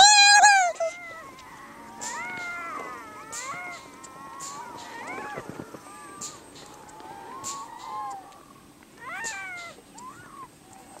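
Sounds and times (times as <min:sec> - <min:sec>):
seal pup crying: 0:00.0 - 0:11.0.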